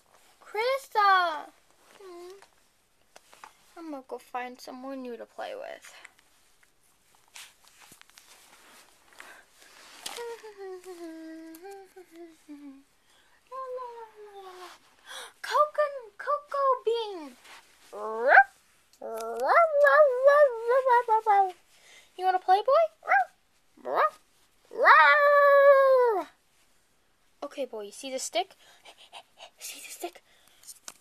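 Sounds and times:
girl imitating a dog: 13.5s - 14.8s, 17.9s - 21.6s, 22.2s - 26.4s.

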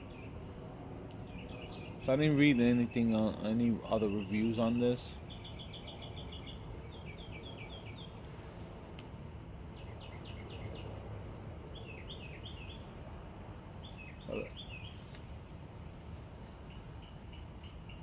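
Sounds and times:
small birds chirping: 0.0s - 8.4s, 9.6s - 13.1s, 13.7s - 18.0s
outdoor background noise: 0.0s - 18.0s.

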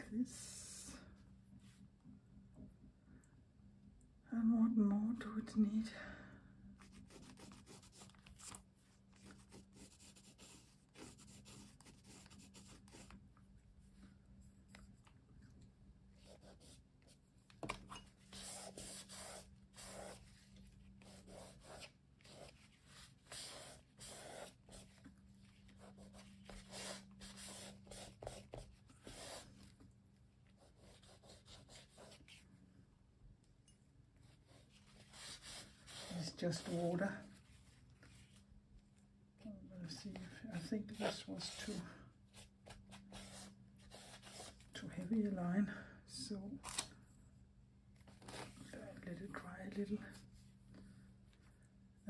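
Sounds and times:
charcoal pencil drawing on paper: 6.8s - 13.2s, 16.2s - 17.2s, 17.9s - 29.7s, 30.6s - 32.4s, 34.2s - 37.6s, 40.6s - 44.7s.

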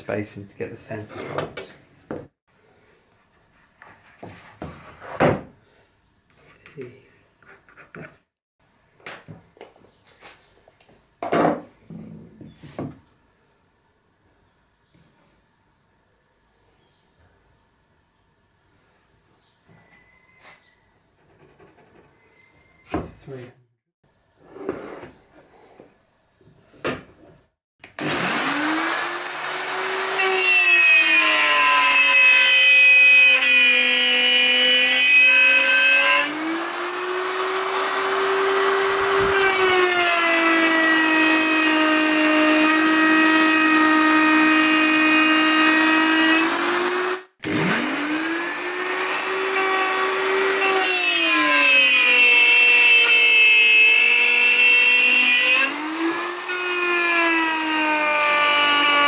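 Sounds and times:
electric router cutting wood: 27.9s - 59.0s.

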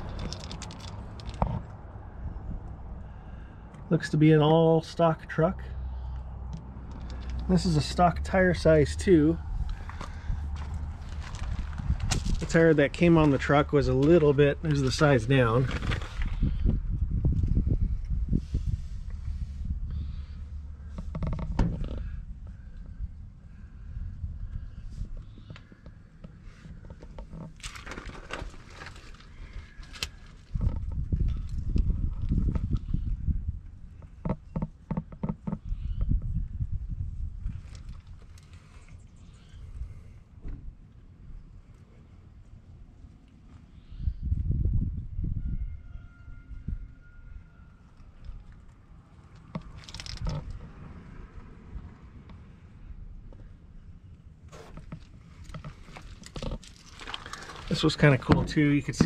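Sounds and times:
microphone handling and wind noise: 9.4s - 40.8s, 44.0s - 45.9s, 49.4s - 50.9s.

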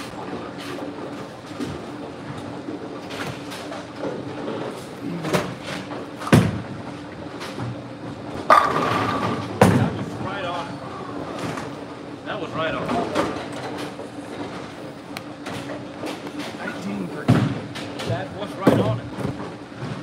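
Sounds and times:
low alley hum: 0.0s - 20.0s
bowling pins crashing: 8.3s - 10.2s.

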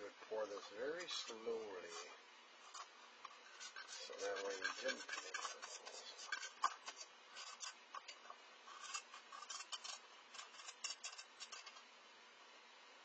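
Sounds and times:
stir stick scraping plastic cup: 0.4s - 11.8s.

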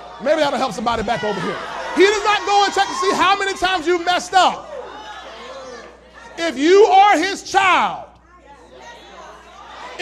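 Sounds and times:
loud speech: 0.0s - 10.0s.

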